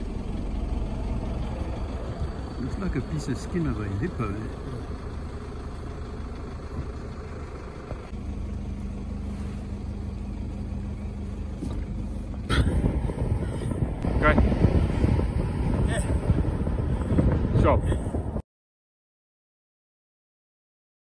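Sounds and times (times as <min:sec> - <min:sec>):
car engine and road noise: 0:00.0 - 0:18.4
wind rumbling on microphone: 0:11.4 - 0:18.4.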